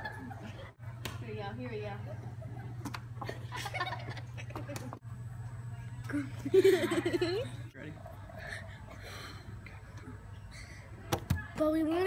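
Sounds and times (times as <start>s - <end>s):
steady low hum: 0.0s - 12.0s
faint breathy sounds: 8.2s - 11.0s.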